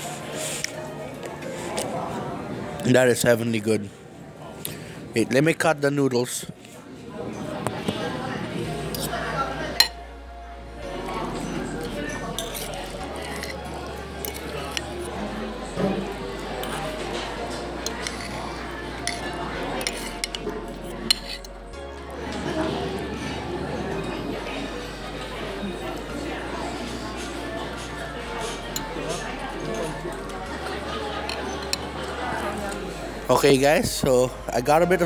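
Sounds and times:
cutlery clinking on plate: 15.9s - 18.4s.

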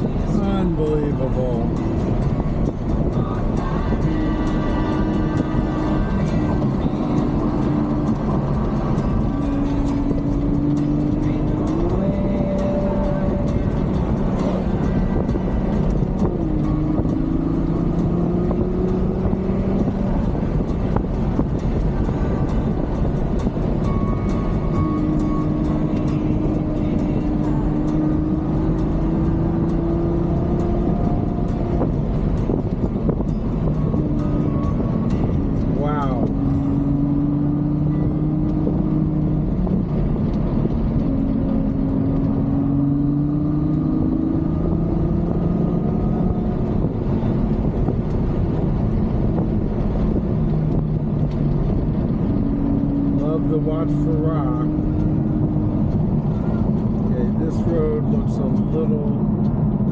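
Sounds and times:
car engine revving: 0.0s - 59.9s
road noise: 0.0s - 59.9s.

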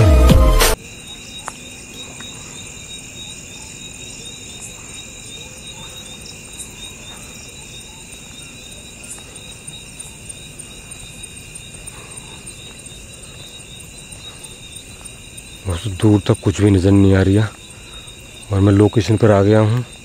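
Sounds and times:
insects trilling: 0.8s - 20.0s.

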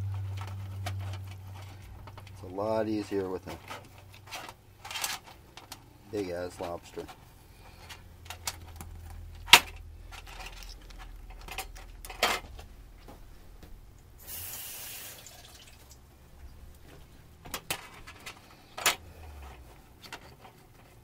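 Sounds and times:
brief hiss: 14.2s - 15.4s.

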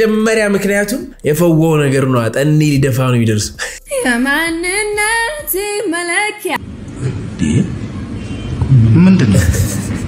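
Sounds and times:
noisy low rumble: 0.0s - 5.9s.

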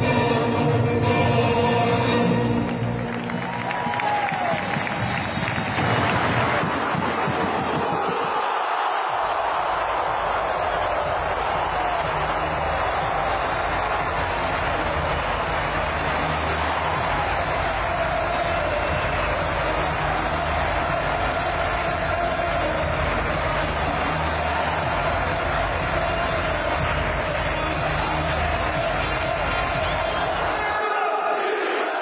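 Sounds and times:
stadium crowd cheering: 2.0s - 32.0s.

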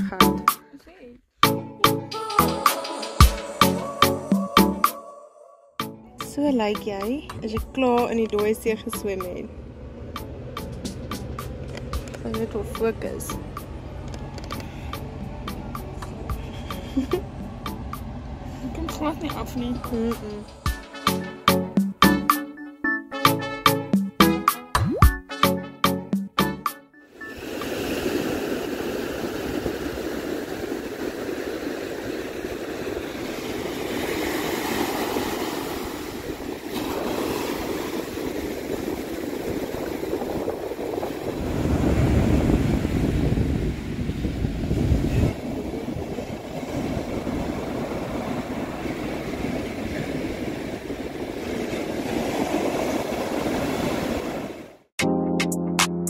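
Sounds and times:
ocean surf breaking: 1.4s - 5.1s, 6.2s - 22.4s, 27.1s - 54.9s.

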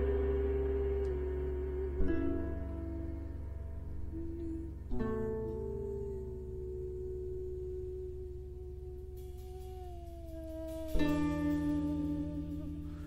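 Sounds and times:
harp chord: 0.0s - 13.0s.

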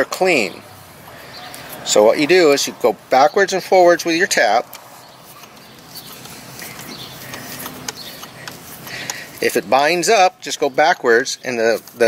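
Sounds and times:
thread tap clicking and scraping: 4.6s - 9.6s.

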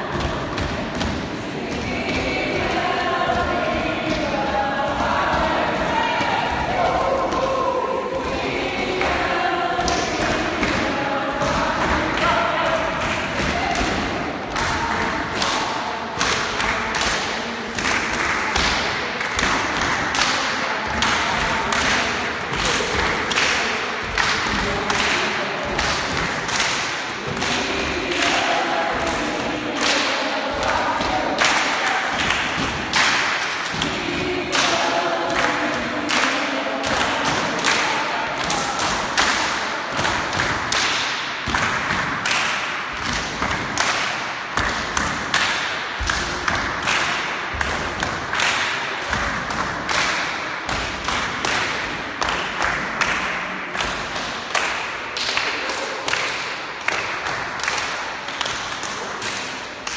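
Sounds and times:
voices singing or humming: 0.0s - 44.0s
crowd clapping in rhythm: 0.0s - 59.9s.

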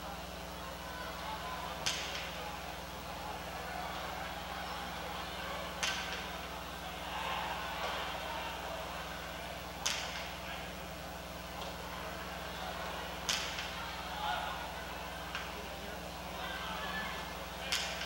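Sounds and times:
murmuring crowd: 0.0s - 18.0s
steady electrical hum: 0.0s - 18.0s.

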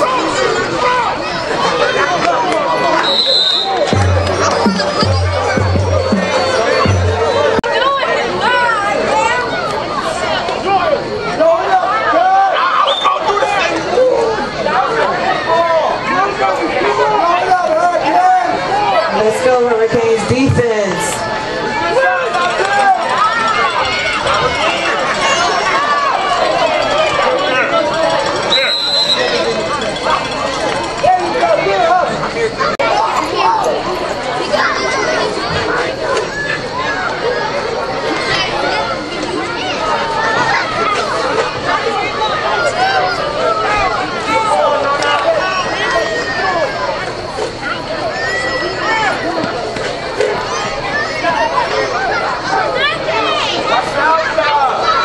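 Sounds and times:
babble of overlapping voices: 0.0s - 55.0s
crowd chattering: 0.0s - 55.0s.

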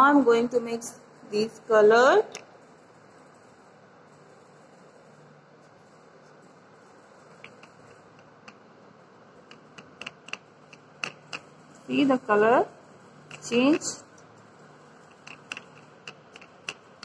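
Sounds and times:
brush tapping plastic palette: 7.3s - 8.6s, 9.5s - 11.5s, 15.1s - 17.0s.

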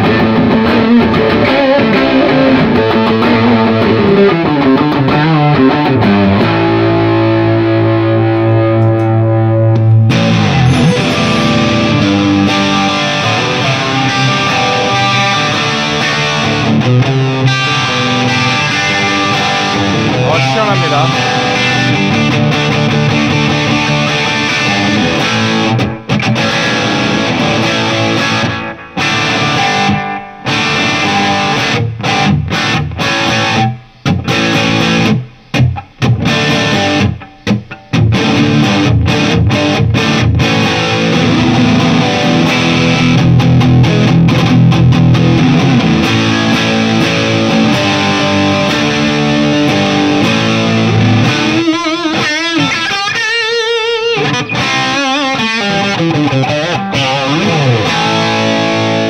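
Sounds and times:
distorted electric guitar: 0.0s - 59.0s.

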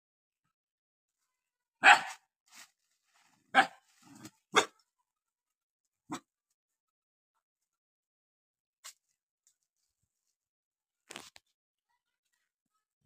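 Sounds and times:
dog barking: 1.8s - 2.3s, 3.5s - 3.9s, 4.5s - 4.8s.

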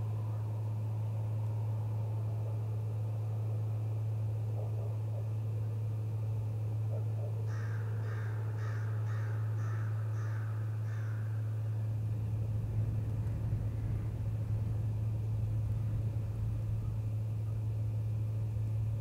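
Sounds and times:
steady low hum: 0.0s - 19.0s
crow cawing: 7.5s - 11.5s
low rumble: 11.3s - 19.0s.

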